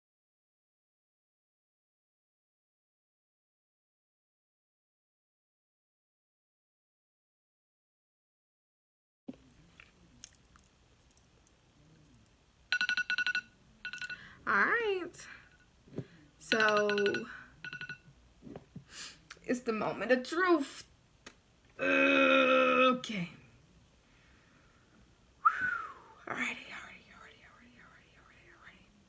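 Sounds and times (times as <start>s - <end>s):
phone alarm beeps: 12.7s - 14.3s, 16.5s - 18.1s.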